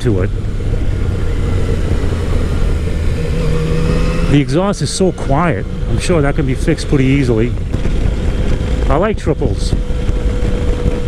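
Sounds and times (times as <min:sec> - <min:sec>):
motorcycle engine running: 0:00.0 - 0:11.0
wind rushing over microphone: 0:00.0 - 0:11.0.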